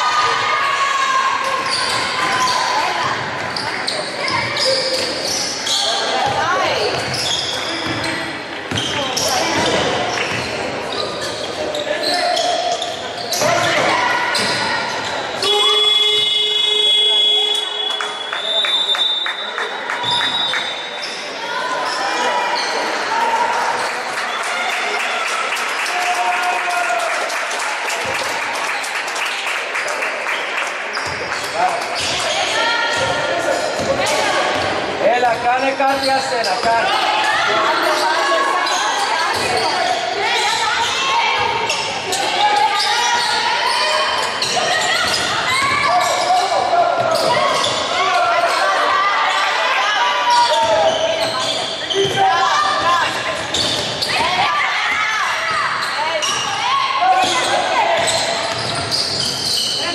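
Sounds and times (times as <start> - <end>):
people shouting: 0.0 - 3.1, 36.7 - 53.2, 54.1 - 58.6
sneakers squeaking: 0.1 - 24.1, 30.9 - 59.9
basketball bouncing on wooden court: 6.2 - 10.5, 33.8 - 35.4, 57.2 - 59.6.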